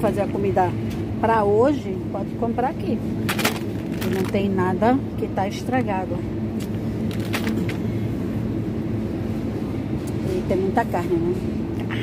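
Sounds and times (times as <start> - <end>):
refrigerated display cases humming: 0.0 - 12.0.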